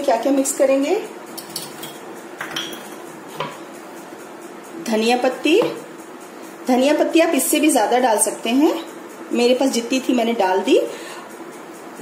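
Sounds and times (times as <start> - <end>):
glass clink: 1.4 - 2.9
kitchenware clicks: 1.4 - 3.6.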